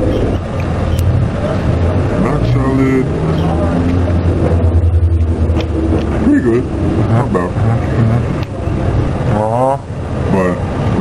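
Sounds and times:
low outdoor rumble: 0:00.0 - 0:11.0
murmured voices: 0:01.2 - 0:11.0.

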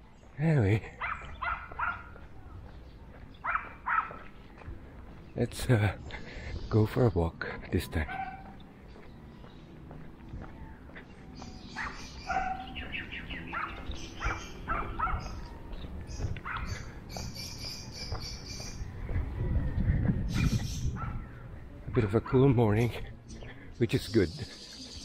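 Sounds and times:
birds chirping: 0:00.0 - 0:25.0.

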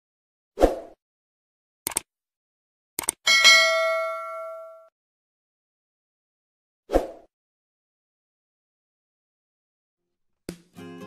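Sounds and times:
quick clicks: 0:01.8 - 0:02.1, 0:03.0 - 0:03.2
bell ding: 0:03.3 - 0:04.9.

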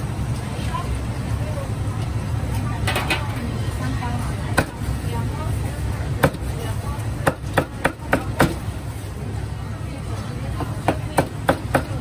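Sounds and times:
low kitchen hum: 0:00.0 - 0:12.0.

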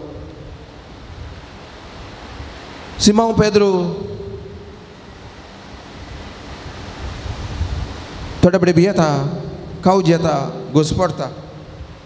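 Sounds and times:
steady rushing noise: 0:00.0 - 0:12.0
man's voice: 0:03.0 - 0:04.4, 0:08.4 - 0:11.4.

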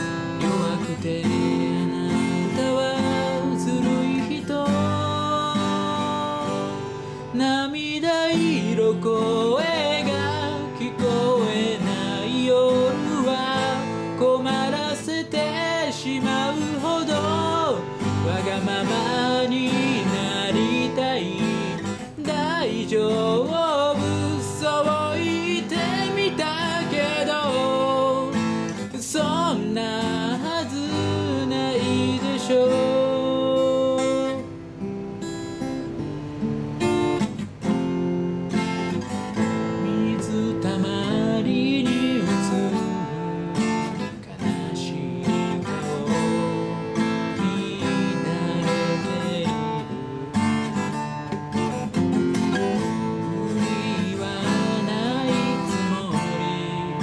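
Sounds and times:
person singing pop song: 0:00.0 - 0:34.5, 0:38.8 - 0:57.0
acoustic guitar chords: 0:00.0 - 0:57.0.

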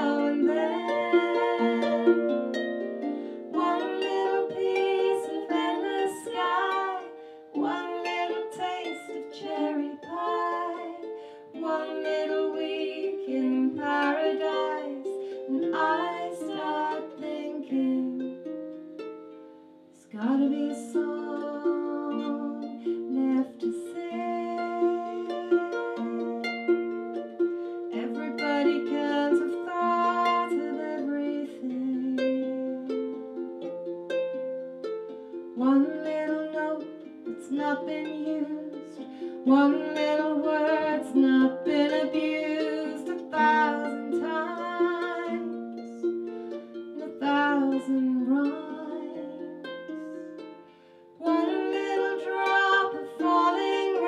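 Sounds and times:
harp plucked folk music: 0:00.0 - 0:54.0.

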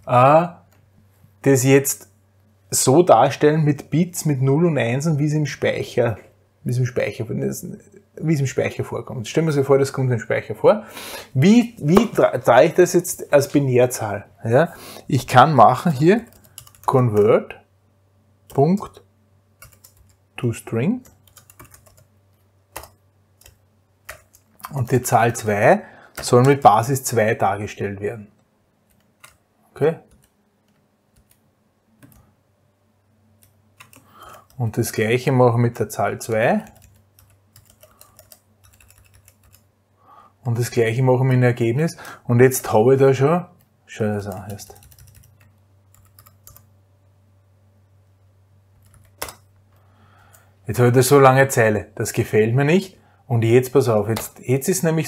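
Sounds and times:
low steady hum: 0:00.0 - 0:55.0
typing on keyboard: 0:16.2 - 0:17.3, 0:19.6 - 0:20.2, 0:21.0 - 0:22.1, 0:22.7 - 0:24.8, 0:33.4 - 0:34.6, 0:36.3 - 0:39.7, 0:44.3 - 0:46.7, 0:48.8 - 0:49.5.

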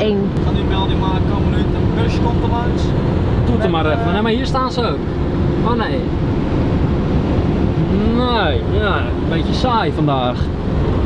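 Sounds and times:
van engine and tyres rumbling: 0:00.0 - 0:11.0.

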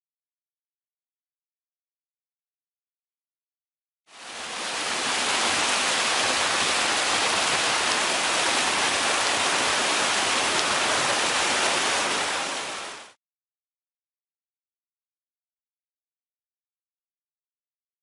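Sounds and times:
rushing whitewater: 0:04.1 - 0:13.2.

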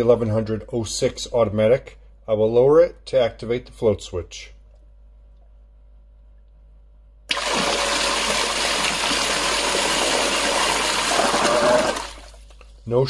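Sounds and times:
bilge pump gushing water: 0:07.3 - 0:12.5.

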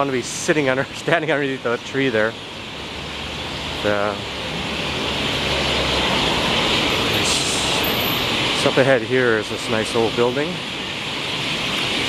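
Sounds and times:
city traffic hum: 0:00.0 - 0:12.0.

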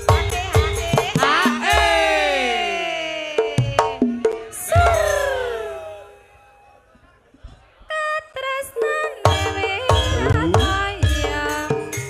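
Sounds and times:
live band music: 0:08.8 - 0:12.0.

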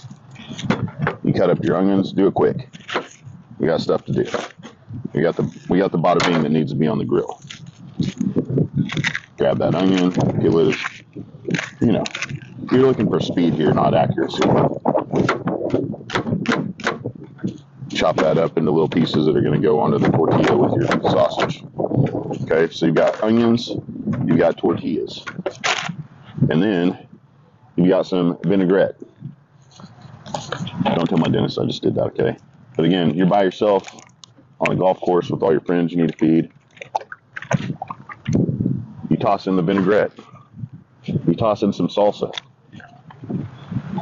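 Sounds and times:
liquid glugging from a bottle: 0:36.6 - 0:38.5.

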